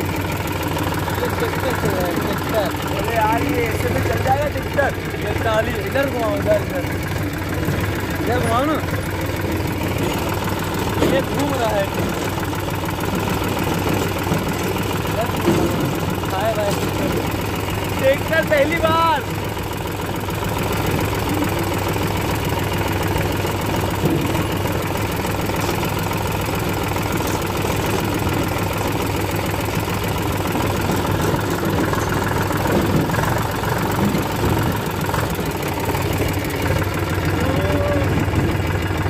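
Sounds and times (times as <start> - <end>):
tractor diesel engine running: 0.0 - 39.0.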